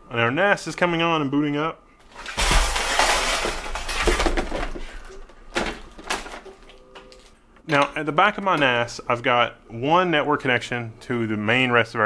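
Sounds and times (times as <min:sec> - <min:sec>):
cables and plastic hardware rustling: 0:02.0 - 0:07.4.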